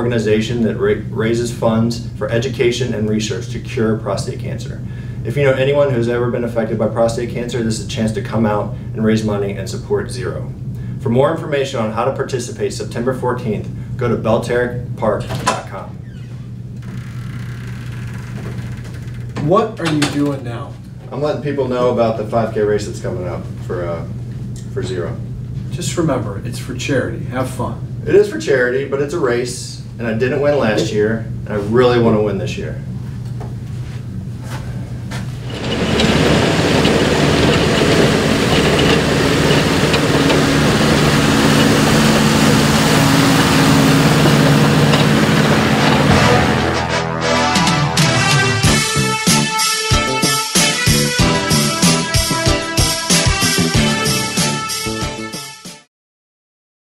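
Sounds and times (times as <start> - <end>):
low room hum: 0.0 - 46.8
loud engine running: 35.4 - 46.9.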